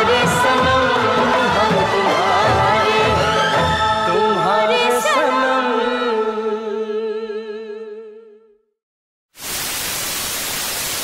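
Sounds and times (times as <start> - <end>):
television static hiss: 9.4 - 11.0.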